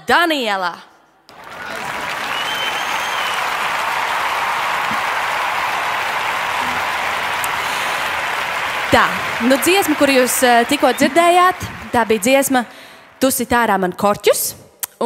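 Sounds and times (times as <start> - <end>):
applause: 1.3 - 13.8.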